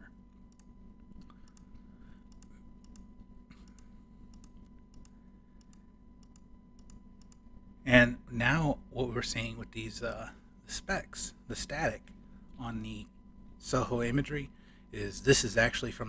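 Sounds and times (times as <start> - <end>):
quiet steady hum: 0.0 - 16.0
computer mouse clicks: 0.5 - 7.4.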